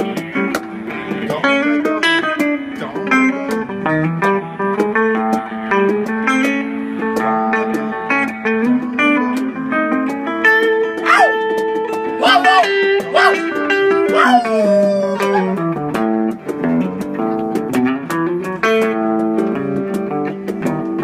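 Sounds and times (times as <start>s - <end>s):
picked guitar notes: 0.0s - 21.0s
sliding vocal cries: 12.2s - 15.6s.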